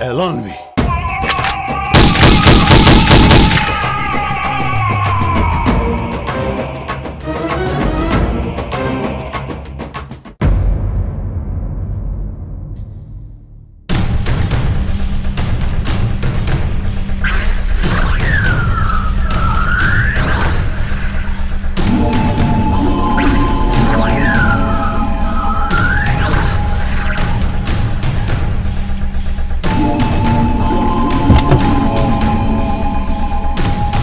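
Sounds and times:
background film music: 0.0s - 34.0s.

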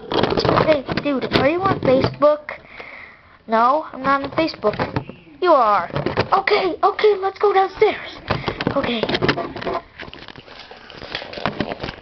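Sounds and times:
hands handling toy pieces: 0.0s - 2.3s, 5.8s - 12.0s.

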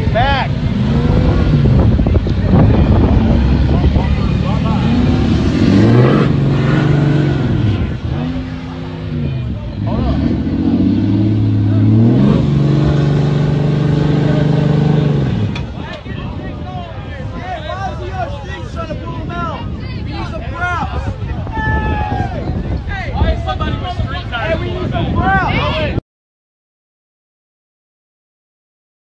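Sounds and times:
car engine revving: 0.0s - 15.9s
voices shouting: 15.7s - 26.0s.

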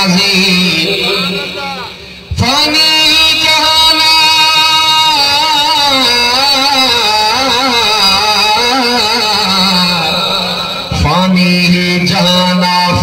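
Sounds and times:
man chanting melodically: 0.0s - 13.0s.

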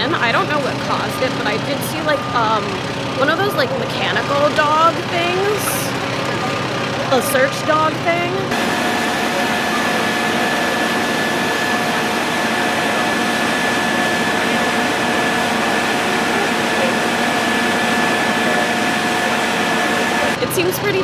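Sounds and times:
machine high whine: 0.0s - 21.0s
machine low hums: 0.0s - 21.0s.

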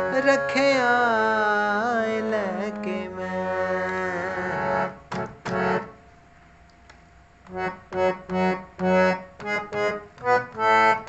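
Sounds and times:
harmonium melody: 0.0s - 6.1s, 7.5s - 11.0s.

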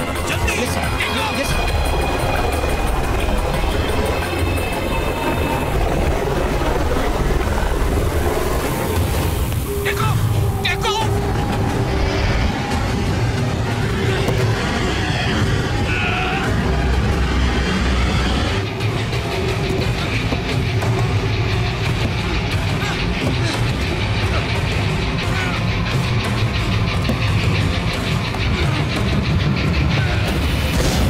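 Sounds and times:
airliner engine and wind noise: 0.0s - 15.9s
tense dramatic music: 0.0s - 31.0s.

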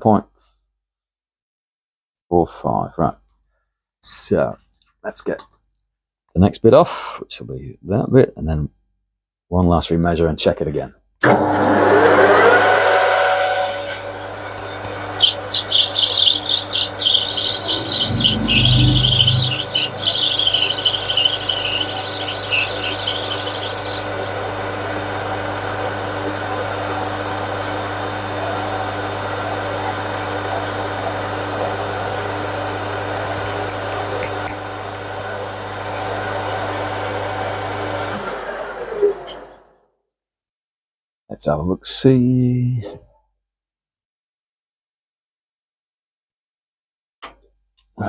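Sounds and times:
lathe motor humming: 11.3s - 39.3s
cutting tool rasping on metal: 13.8s - 24.4s.

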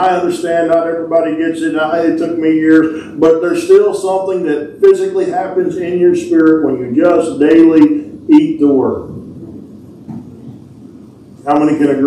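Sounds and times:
low room rumble: 0.0s - 12.0s.

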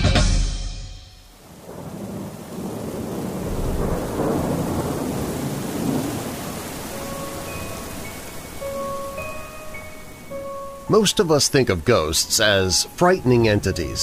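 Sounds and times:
rain hiss: 1.2s - 14.0s
thunder rumble: 1.4s - 10.2s.

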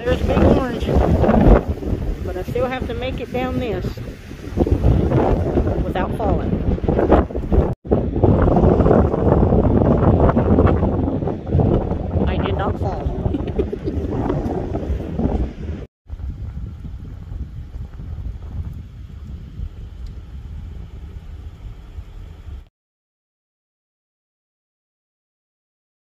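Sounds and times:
wind buffeting microphone: 0.0s - 22.7s
low rumble: 3.7s - 22.7s.

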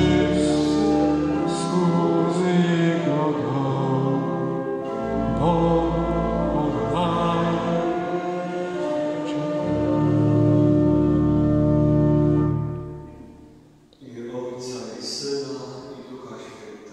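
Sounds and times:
church organ chord: 0.0s - 13.9s
man speaking: 14.0s - 16.9s.

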